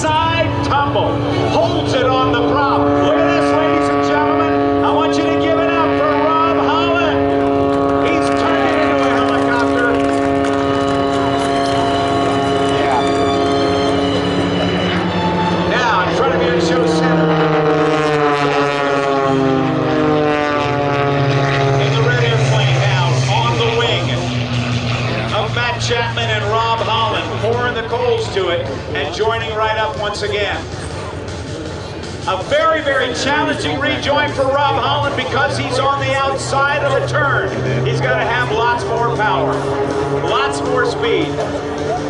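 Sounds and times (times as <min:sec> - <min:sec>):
propeller airplane droning overhead: 0:00.0 - 0:42.0.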